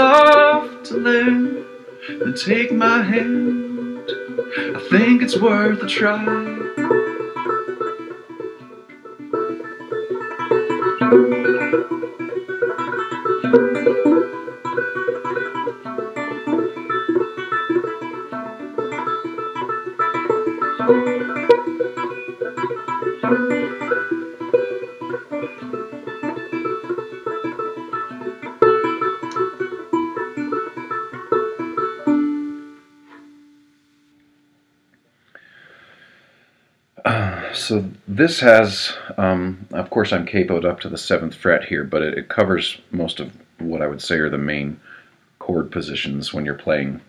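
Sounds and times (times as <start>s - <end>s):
finger-picked banjo: 0.0s - 34.5s, 37.0s - 47.0s.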